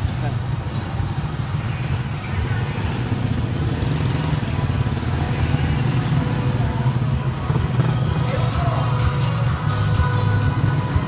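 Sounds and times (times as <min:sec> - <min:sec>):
low rumble of motor traffic: 0:00.0 - 0:11.0
motorcycle engines running: 0:00.0 - 0:11.0
faint music: 0:00.1 - 0:11.0.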